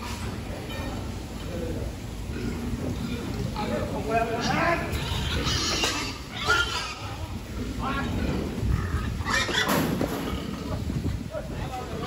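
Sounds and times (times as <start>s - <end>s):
pigs squealing and grunting: 2.2s - 10.8s.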